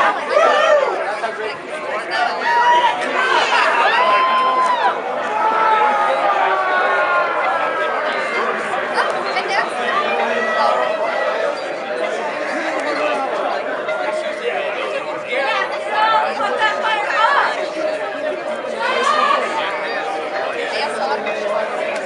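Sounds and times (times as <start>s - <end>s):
people chattering: 0.0s - 22.0s.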